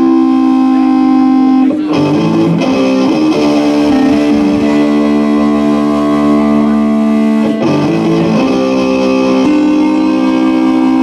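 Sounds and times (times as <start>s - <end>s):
rock band with electric guitars: 0.0s - 11.0s.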